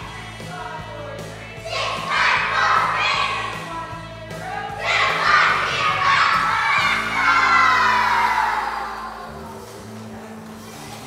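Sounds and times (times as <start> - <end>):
children's choir singing: 1.6 - 3.8, 4.4 - 9.7.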